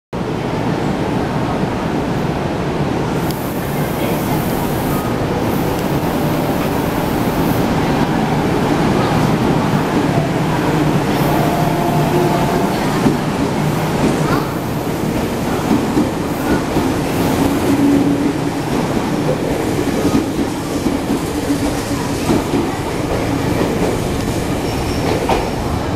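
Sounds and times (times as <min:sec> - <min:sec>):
faint steady train tones: 0:00.2 - 0:25.9
electric train running noise: 0:03.2 - 0:23.8.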